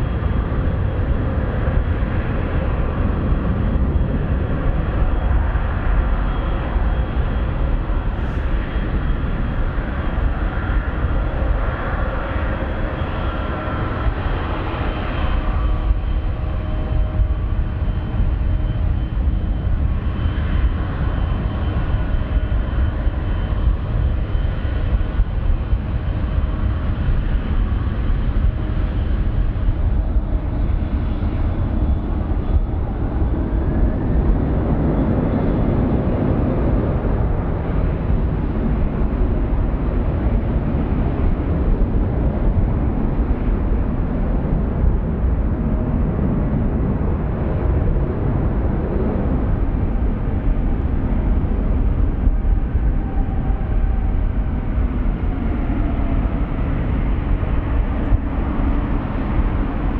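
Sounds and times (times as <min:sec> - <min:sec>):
jet engines rumbling: 0:00.0 - 0:59.9.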